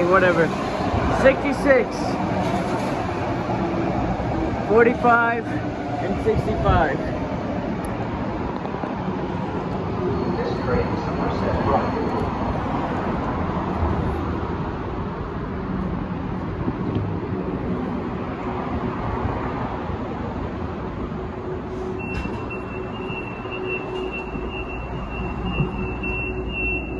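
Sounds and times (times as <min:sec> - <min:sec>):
train rumbling at platform: 0:00.0 - 0:26.9.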